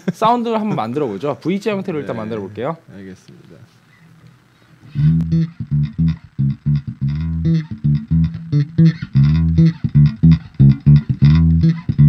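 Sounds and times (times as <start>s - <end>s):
electric bass riff: 4.9s - 12.0s.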